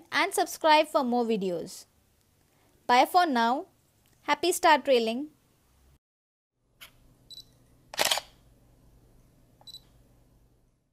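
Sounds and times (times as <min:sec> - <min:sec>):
high focus beep: 0:07.3 - 0:07.6, 0:09.6 - 0:09.9
camera shutter release: 0:07.9 - 0:08.4
faint camera click: 0:07.9 - 0:08.4.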